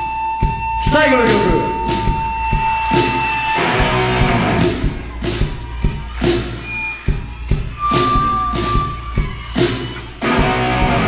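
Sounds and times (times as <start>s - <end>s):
drum and cymbal hits: 0.0s - 11.0s
live rock band playing: 0.4s - 11.0s.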